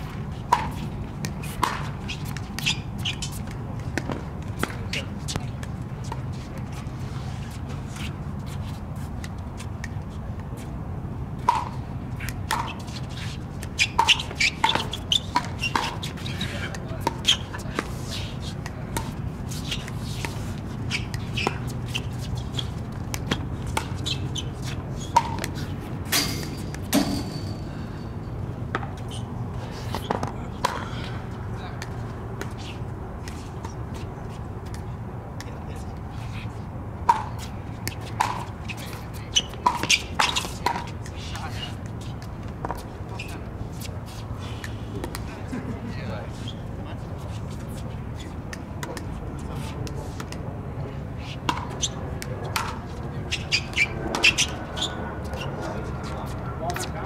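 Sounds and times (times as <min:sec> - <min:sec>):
paddles striking pickleball: 0:00.5 - 0:06.3, 0:11.4 - 0:27.6, 0:37.0 - 0:43.3, 0:51.4 - 0:55.5.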